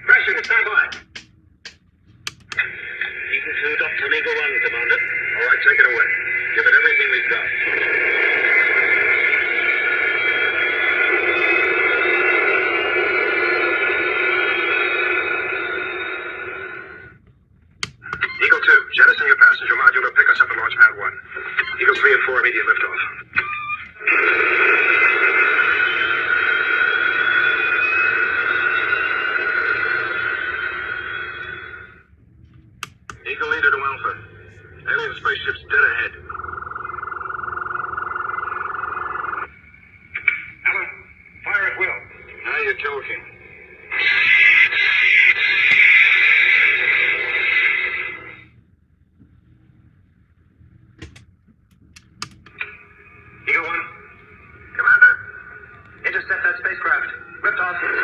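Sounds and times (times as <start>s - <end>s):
choppy radio-like bursts: 0.0s - 17.2s, 17.8s - 48.6s, 52.0s - 58.0s
rushing engine with rising whine: 25.2s - 48.6s.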